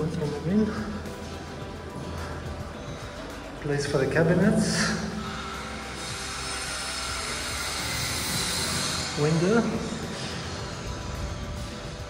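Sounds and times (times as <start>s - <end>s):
rushing outdoor noise: 0.0s - 12.0s.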